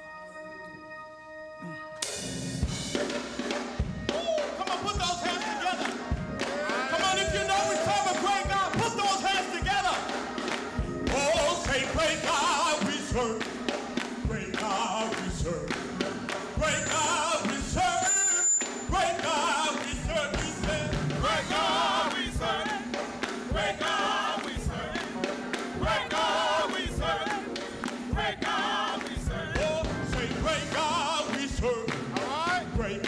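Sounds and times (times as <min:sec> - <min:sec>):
keyboard accompaniment: 0:00.0 - 0:33.0
gospel singing: 0:03.0 - 0:33.0.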